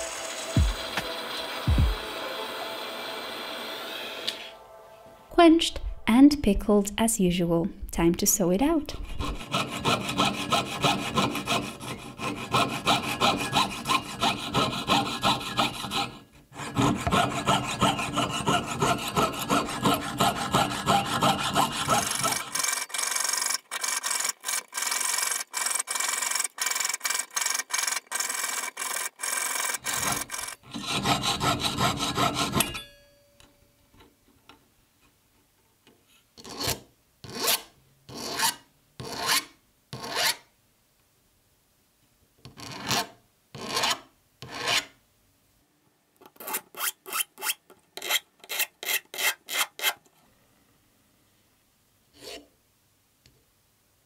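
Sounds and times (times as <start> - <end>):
saw cutting metal: 0.0 - 4.5, 9.0 - 33.0
file scraping metal edge: 8.9 - 33.0, 36.4 - 40.4, 42.6 - 45.0, 46.3 - 50.0, 52.2 - 52.5.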